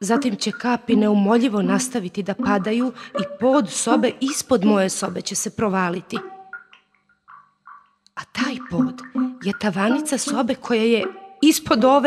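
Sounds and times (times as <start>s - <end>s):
water drips: 0.0s - 12.0s.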